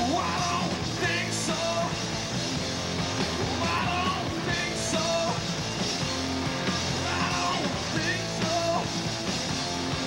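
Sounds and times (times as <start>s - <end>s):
male lead vocal singing: 0.0s - 2.0s, 3.5s - 5.4s, 6.9s - 8.9s
rock band playing live: 0.0s - 10.0s.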